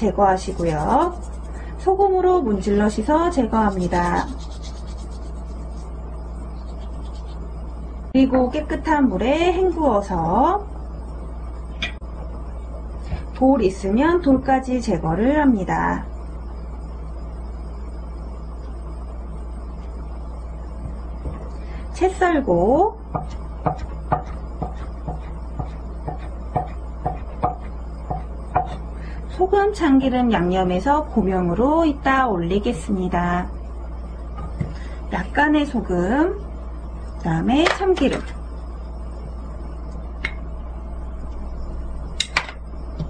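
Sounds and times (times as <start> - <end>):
low hum: 0.0 - 43.0.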